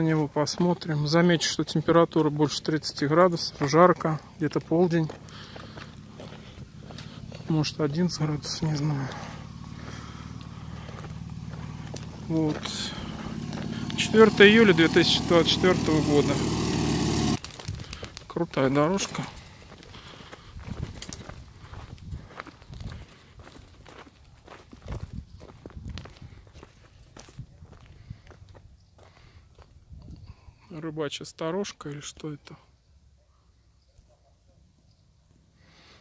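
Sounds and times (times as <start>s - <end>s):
footsteps on gravel: 0.0s - 29.7s
small engine idling: 3.5s - 17.4s.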